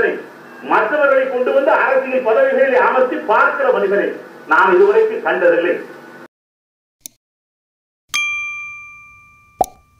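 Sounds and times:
notification bell chime: 8.1s - 9.9s.

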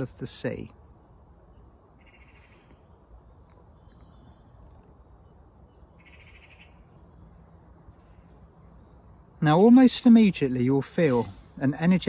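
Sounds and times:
buzzy bird call: 6.0s - 6.9s
thin high bird chirps: 10.8s - 12.0s.

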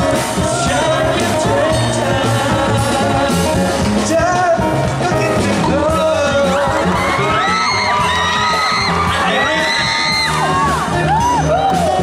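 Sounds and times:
person singing: 0.0s - 10.7s
live band with acoustic guitar: 0.0s - 12.0s
audience whooping and cheering: 6.2s - 12.0s.

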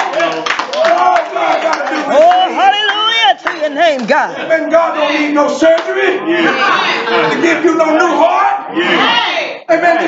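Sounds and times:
hand clapping: 0.0s - 4.1s
man preaching in a raised voice: 0.8s - 10.0s.

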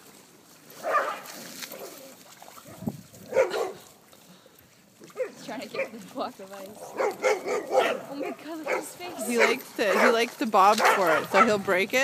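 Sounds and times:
dog barking: 0.8s - 1.2s, 3.3s - 3.8s, 5.2s - 6.0s, 6.9s - 10.2s, 10.8s - 11.6s.

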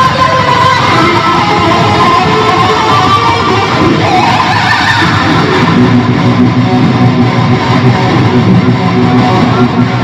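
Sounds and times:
loud electric guitar solo: 0.0s - 10.0s.

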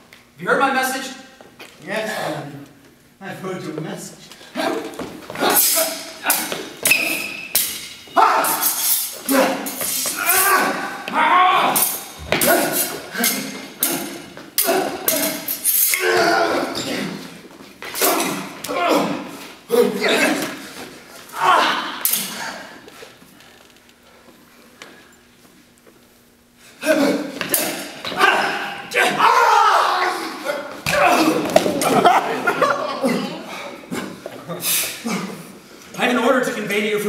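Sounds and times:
fighters shouting and grunting: 4.5s - 7.3s, 8.1s - 22.8s, 26.8s - 34.2s
sword blades clashing: 5.4s - 10.9s, 11.6s - 17.1s.

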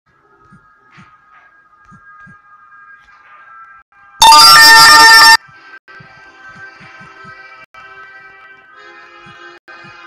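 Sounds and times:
faint background music: 0.1s - 4.8s, 5.4s - 10.0s
loud distorted electronic tones: 4.2s - 5.4s.

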